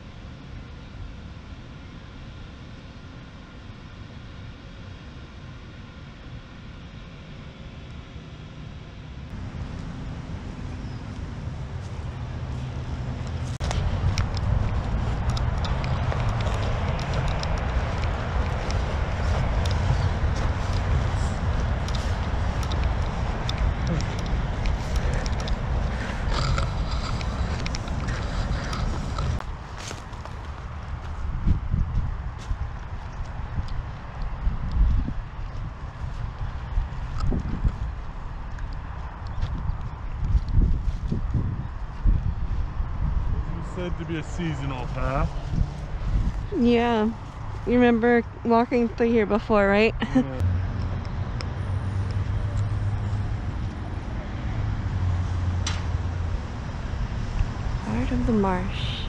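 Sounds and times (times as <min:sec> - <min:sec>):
rushing air with low rumble: 0:00.0 - 0:59.0
footsteps on dirt trail: 0:09.3 - 0:43.4, 0:44.7 - 0:48.9.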